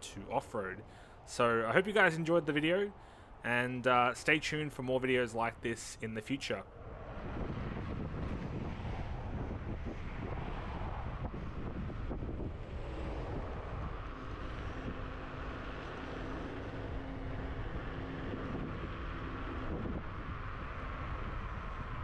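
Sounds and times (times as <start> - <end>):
wind rushing over microphone: 0.0 - 22.0.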